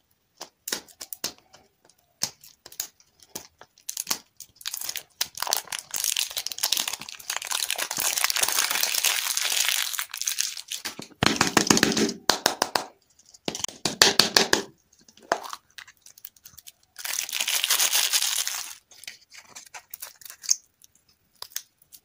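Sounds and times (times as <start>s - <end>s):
plastic wrapper crinkling: 0.8s - 11.8s, 15.0s - 22.0s.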